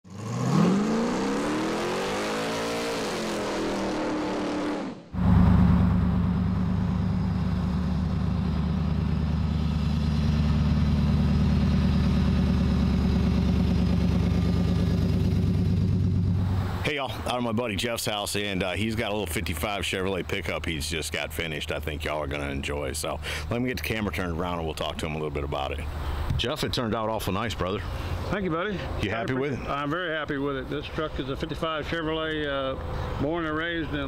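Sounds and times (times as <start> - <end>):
engine revving: 0.0 - 16.8
truck engine running low: 5.1 - 16.8.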